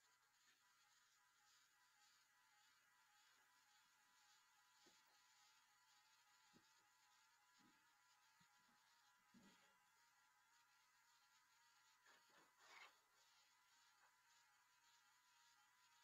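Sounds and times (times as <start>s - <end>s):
faint steady hiss: 0.0s - 16.0s.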